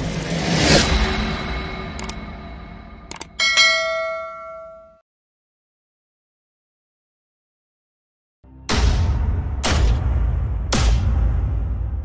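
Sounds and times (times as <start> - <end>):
mouse click sound effects: 2.0 - 2.2, 3.1 - 3.3
bell ding: 3.2 - 5.0.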